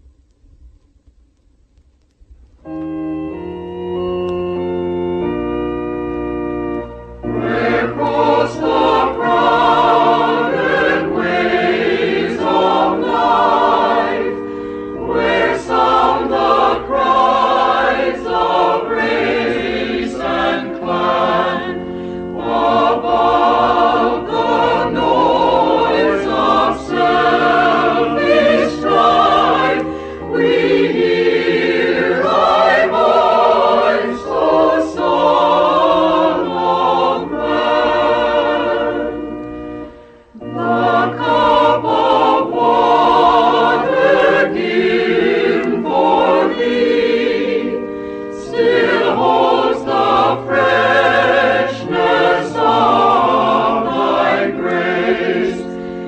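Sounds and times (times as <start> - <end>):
choir singing a hymn: 5.1 - 56.0.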